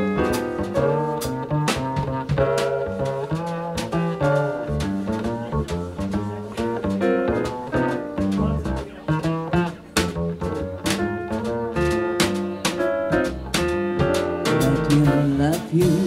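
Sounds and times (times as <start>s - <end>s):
electric piano chords: 0.0s - 16.0s
walking double bass: 0.0s - 16.0s.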